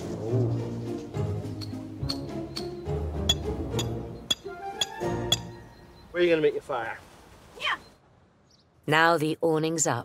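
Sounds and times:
background music: 0.0 - 6.2
hammer striking metal pegs: 1.6 - 5.5.

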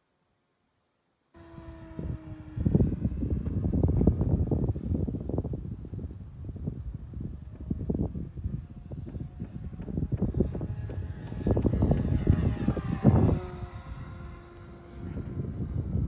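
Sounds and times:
model plane motor whine: 1.4 - 16.0
wind buffeting microphone: 1.4 - 16.0.

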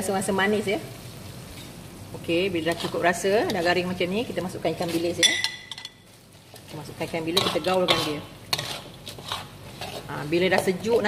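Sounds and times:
metal spatula scraping a wok: 2.6 - 3.8, 6.5 - 11.0.

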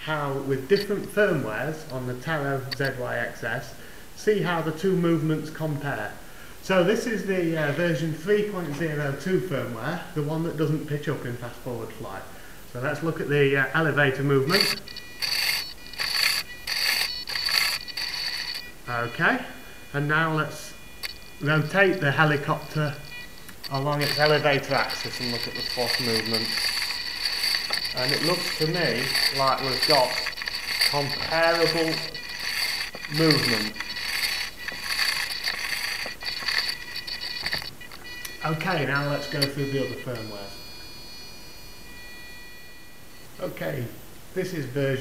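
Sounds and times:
high electric servo whine: 13.8 - 43.4.

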